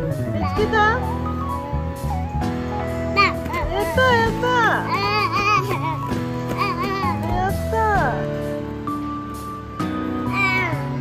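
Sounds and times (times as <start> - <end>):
background music: 0.0 - 11.0
child babbling and squealing: 3.2 - 7.5, 10.3 - 11.0.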